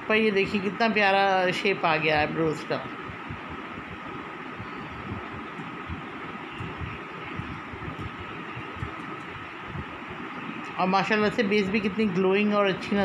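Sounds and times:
background hiss and hum: 0.0s - 13.0s
faint high whine: 0.0s - 13.0s
uneven low rumble: 3.1s - 10.7s.

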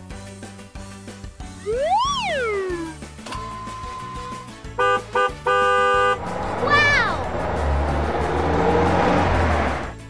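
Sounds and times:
background music: 0.0s - 10.0s
falling whistle-like glide: 1.6s - 3.0s
cartoon bus horn honking: 3.5s - 7.2s
rumbling driving noise: 6.0s - 10.0s.

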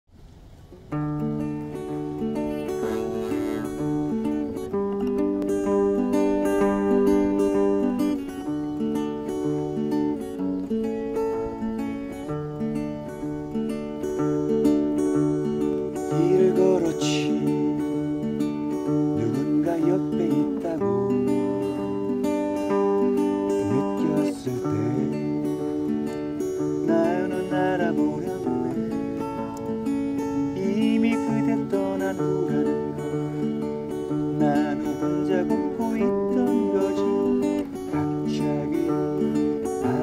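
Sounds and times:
acoustic guitar picked arpeggio: 0.2s - 40.0s.

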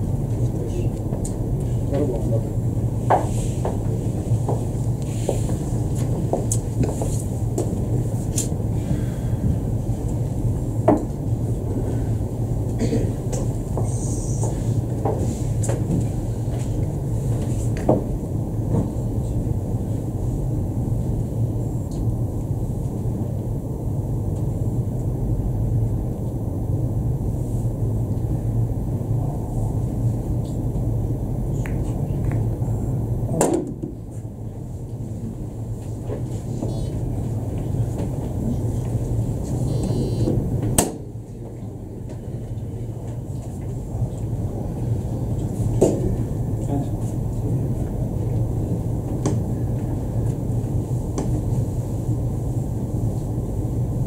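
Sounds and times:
low room rumble: 0.0s - 54.0s.

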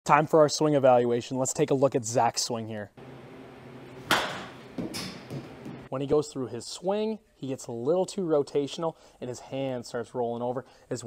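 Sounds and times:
faint noisy impact: 3.9s - 5.9s
bat hitting ball crack: 4.0s - 5.8s.

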